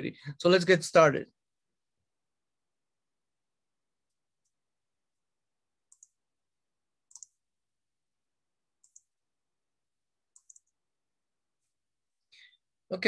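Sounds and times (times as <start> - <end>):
faint computer mouse clicks: 7.1 - 7.4, 10.4 - 10.8.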